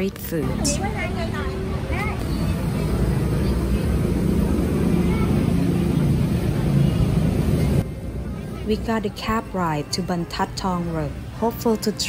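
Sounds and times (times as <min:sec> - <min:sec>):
people's voices: 0:00.0 - 0:12.0
steady low street rumble: 0:00.0 - 0:12.0.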